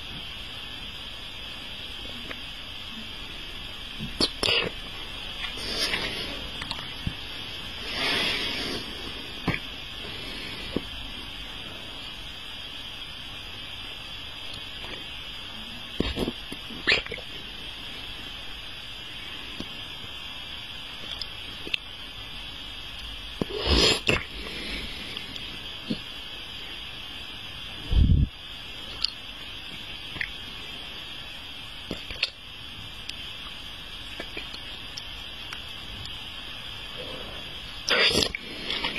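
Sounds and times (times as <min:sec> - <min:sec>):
steady hiss: 0:00.0 - 0:38.9
wet mouth clicks: 0:04.0 - 0:04.8, 0:06.6 - 0:06.9, 0:16.0 - 0:17.2, 0:21.0 - 0:21.8, 0:28.9 - 0:29.2, 0:30.1 - 0:30.4, 0:31.9 - 0:32.4, 0:34.1 - 0:36.2, 0:37.9 - 0:38.9
breaths: 0:24.3 - 0:25.5.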